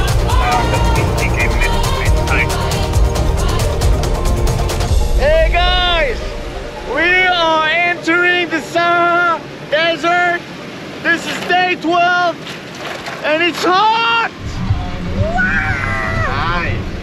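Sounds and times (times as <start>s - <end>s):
low rumble: 0.0s - 8.1s, 14.4s - 17.0s.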